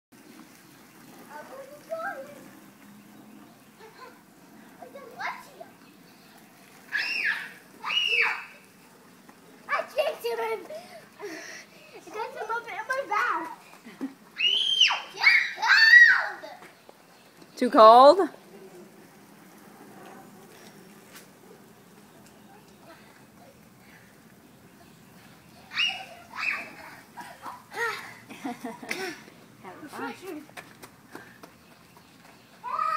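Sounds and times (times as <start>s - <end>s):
lawn sprinkler spray hiss: 0.2s - 12.6s
faint background noise: 0.2s - 32.9s
children squealing: 6.9s - 8.7s, 14.4s - 16.6s, 25.6s - 28.1s, 32.6s - 32.9s.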